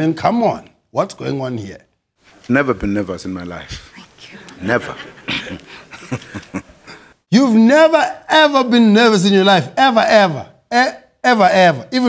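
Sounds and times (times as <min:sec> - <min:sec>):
man chuckling: 0:04.5 - 0:07.2.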